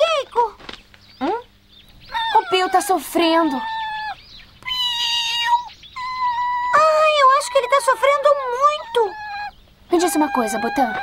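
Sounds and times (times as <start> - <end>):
cartoon creature wailing cries: 2.1 - 11.0.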